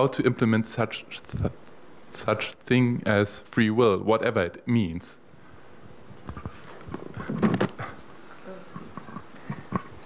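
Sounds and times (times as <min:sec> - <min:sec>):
microphone handling knocks and rubbing: 0:06.1 - 0:08.0.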